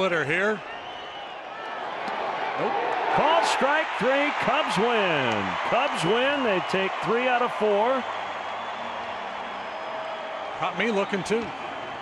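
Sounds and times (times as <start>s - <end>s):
ballpark crowd noise: 0.0s - 12.0s.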